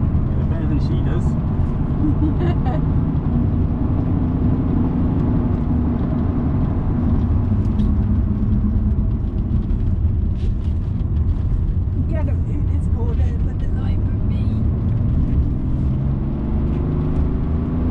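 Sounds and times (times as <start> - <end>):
car engine and tyres rumbling: 0.0 - 17.9.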